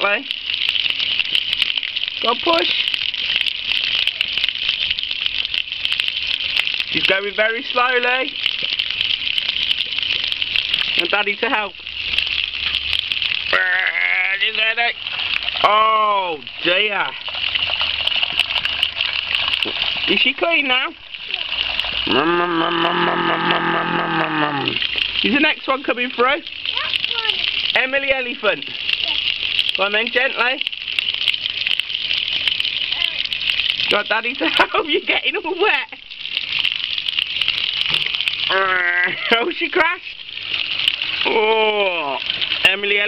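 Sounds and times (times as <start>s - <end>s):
water spraying and pattering: 0.0s - 43.0s
child's drawn-out vocal sound: 21.3s - 21.5s, 26.7s - 27.6s, 29.0s - 29.3s, 32.9s - 33.2s.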